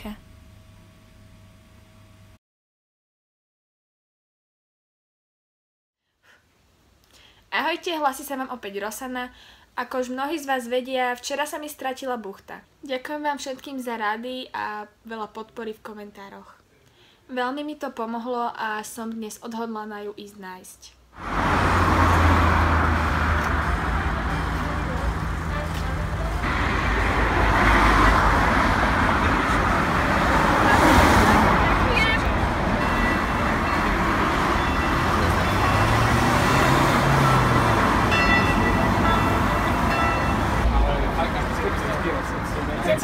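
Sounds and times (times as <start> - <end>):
cars passing on road: 21.2 - 43.0
vehicle engine tone: 21.2 - 43.0.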